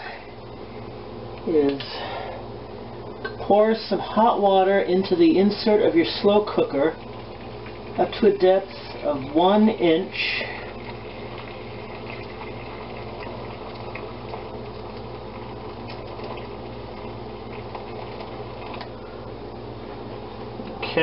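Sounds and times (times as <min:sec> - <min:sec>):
hot water pouring from kettle: 0:04.3 - 0:19.0.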